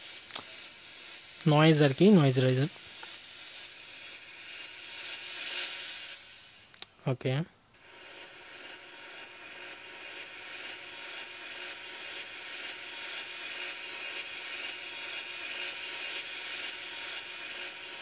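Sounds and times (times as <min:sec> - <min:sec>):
white noise riser hiss: 0:00.0 - 0:18.0.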